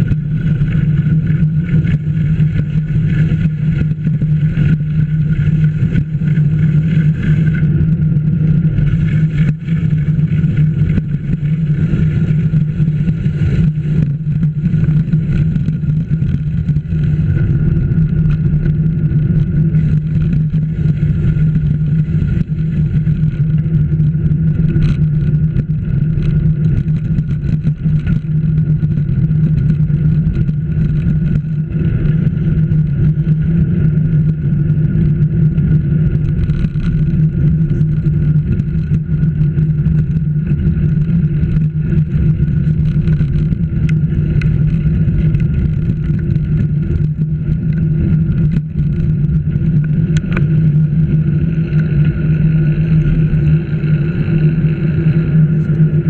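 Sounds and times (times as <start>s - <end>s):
road and wind noise: 0.0s - 56.0s
vehicle drone: 0.0s - 56.0s.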